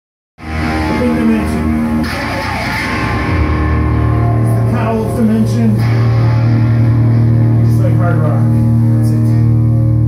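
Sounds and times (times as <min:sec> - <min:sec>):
deep bass guitar note: 0:00.4 - 0:10.0
rock band guitar chords: 0:00.4 - 0:10.0.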